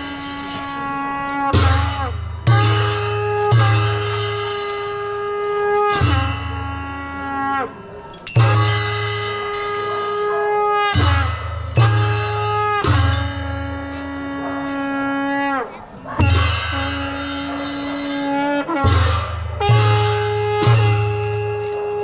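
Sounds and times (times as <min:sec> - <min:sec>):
cymbal clashes: 0:00.0 - 0:07.1, 0:08.2 - 0:14.0, 0:16.2 - 0:22.0
barrel drum strokes: 0:00.0 - 0:07.2, 0:08.3 - 0:15.4, 0:16.2 - 0:22.0
held wind instrument notes: 0:00.0 - 0:22.0.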